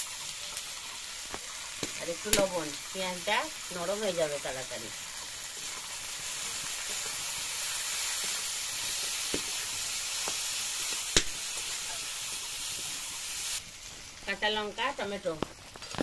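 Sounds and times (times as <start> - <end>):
onions sizzling in hot oil: 0.0 - 16.0
spatula stirring in wok: 5.0 - 13.5.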